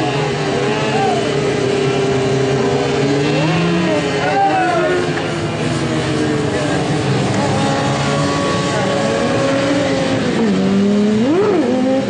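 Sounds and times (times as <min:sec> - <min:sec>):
motorbike engine at high revs: 0:00.0 - 0:12.0.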